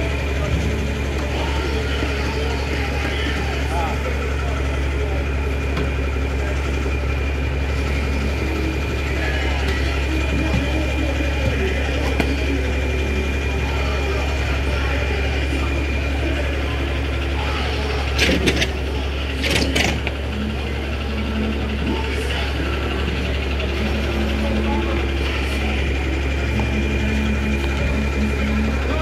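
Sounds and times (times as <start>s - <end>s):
background voices: 0.0s - 29.0s
engine humming: 0.0s - 29.0s.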